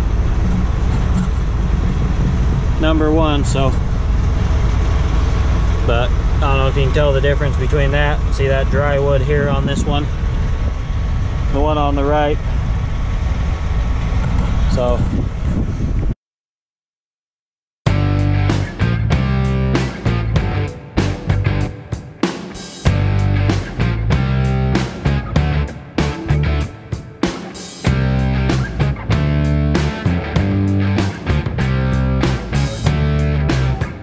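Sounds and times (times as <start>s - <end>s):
wind buffeting microphone: 0.0s - 16.2s
man speaking: 2.8s - 3.8s, 5.8s - 10.1s, 11.5s - 12.4s.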